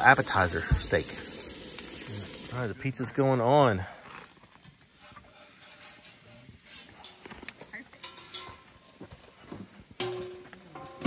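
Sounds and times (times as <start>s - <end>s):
light metal clinks and knocks: 6.8s - 11.0s
metal lid clattering: 8.0s - 8.7s.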